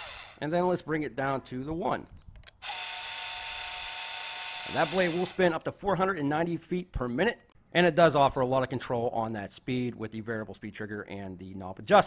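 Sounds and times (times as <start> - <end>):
band saw motor whining: 0.0 - 0.4, 2.6 - 5.4.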